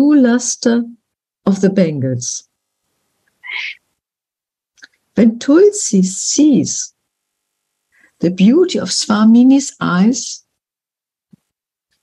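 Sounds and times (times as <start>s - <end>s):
faint mouth click: 4.8s - 5.0s
person breathing: 7.9s - 8.2s.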